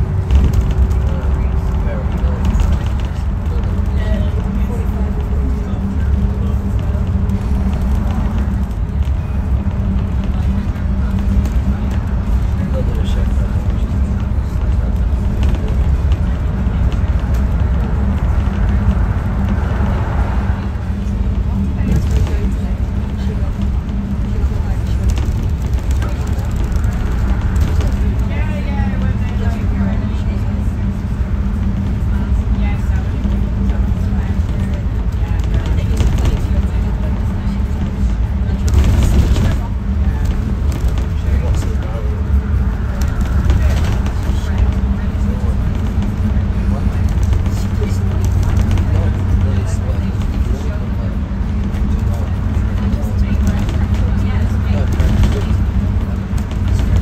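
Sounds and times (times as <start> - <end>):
bus engine and road rumble: 0.0 - 57.0
constant hum: 0.0 - 57.0.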